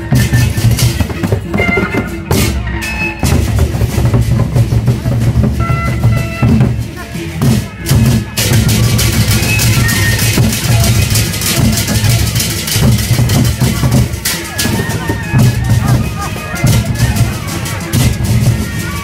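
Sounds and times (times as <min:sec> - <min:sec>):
barrel drums beating fast rhythm: 0:00.0 - 0:19.0.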